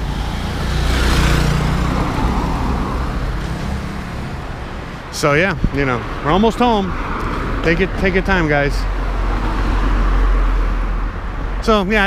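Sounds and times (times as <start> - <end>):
motorcycle passing by: 0.0 - 4.6.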